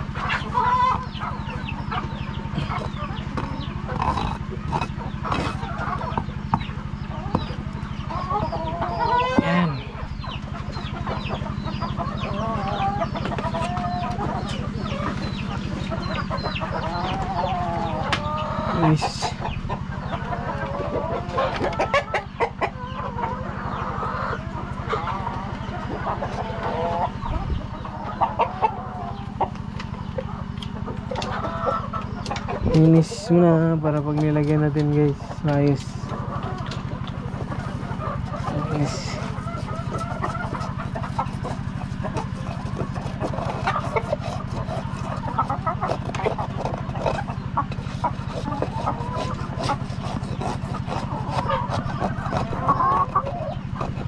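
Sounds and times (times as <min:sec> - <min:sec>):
chickens clucking: 0:00.0 - 0:54.0
steady low hum: 0:00.0 - 0:54.0.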